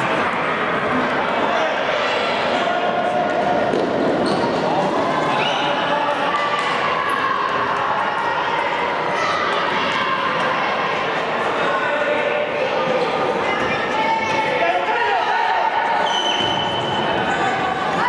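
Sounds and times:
shouting voices echoing in hall: 0.0s - 18.0s.

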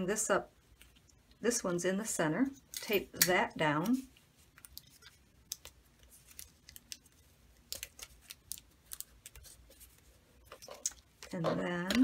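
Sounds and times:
tape and paper crackling: 3.8s - 12.0s.

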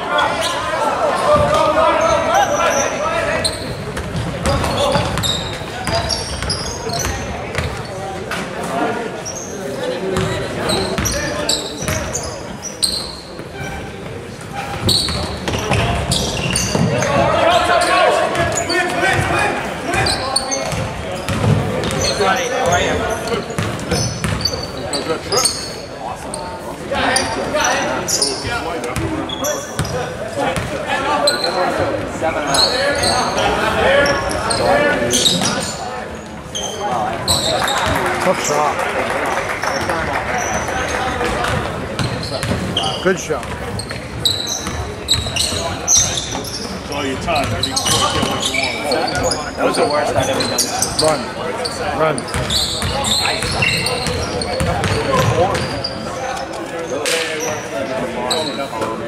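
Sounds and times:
voices echoing in hall: 0.0s - 59.0s.

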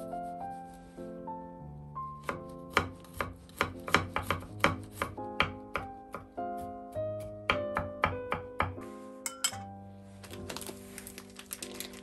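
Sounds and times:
soft background music: 0.0s - 12.0s
knife chopping on wooden board: 2.2s - 8.9s.

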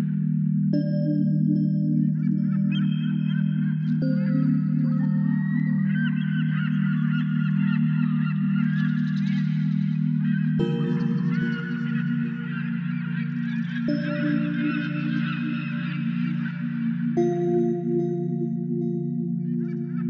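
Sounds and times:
low droning music: 0.0s - 20.0s
chorus of birds calling: 2.4s - 17.2s.

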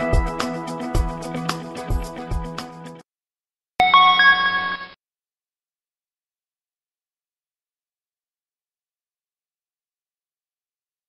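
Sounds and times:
rising three-note electronic chime: 3.8s - 5.0s.

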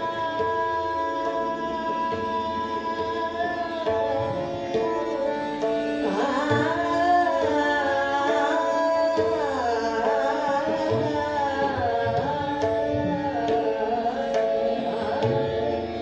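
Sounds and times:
harmonium: 0.0s - 16.0s
low tabla strokes: 0.0s - 16.0s
tanpura drone: 0.0s - 16.0s
woman singing classical vocals: 6.0s - 15.6s.

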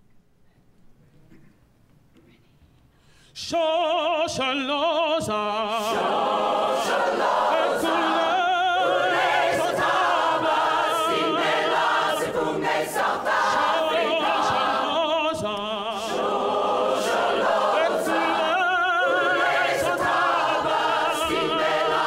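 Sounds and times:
man singing into microphone: 3.4s - 5.9s, 14.1s - 16.1s
choir singing in harmony: 4.2s - 22.0s.

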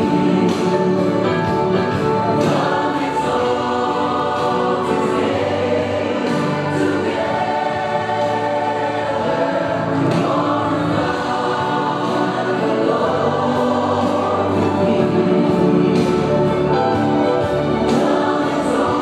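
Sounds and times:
choir singing gospel: 0.0s - 19.0s.

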